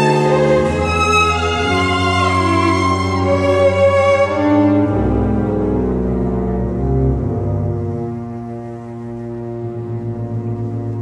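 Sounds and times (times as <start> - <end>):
string orchestra sustained chord: 0.0 - 11.0.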